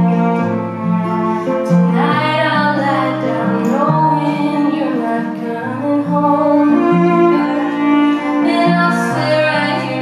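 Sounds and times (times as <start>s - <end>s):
bowed fiddle: 0.0s - 10.0s
woman singing: 1.6s - 10.0s.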